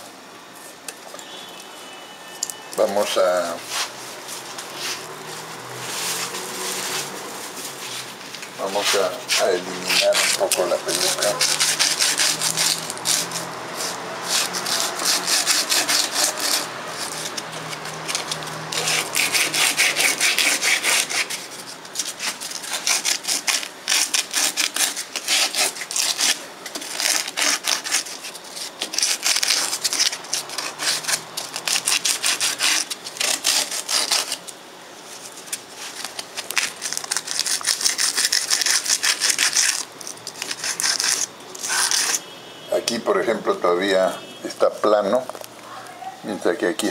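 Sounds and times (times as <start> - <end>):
sandpaper rasping on wood: 4.7 - 7.2, 7.8 - 34.4, 36.7 - 42.2.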